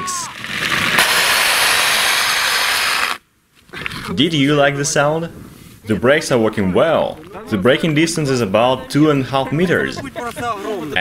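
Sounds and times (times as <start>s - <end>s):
snowmobile brakes scraping on ice: 0.4s - 3.2s.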